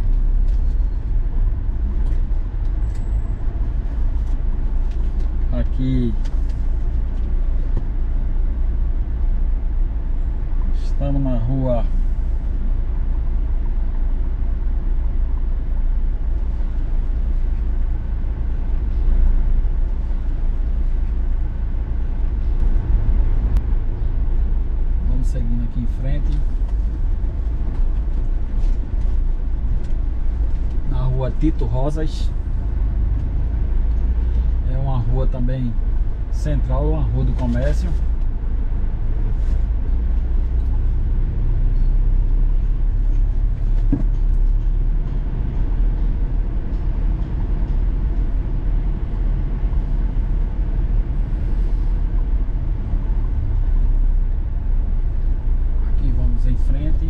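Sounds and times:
engine and road noise drone: 0.0s - 57.0s.

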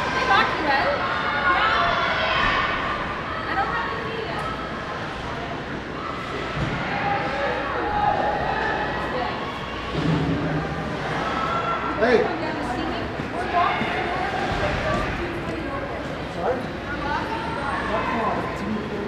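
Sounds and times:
indistinct shouting and chatter: 0.0s - 19.0s.

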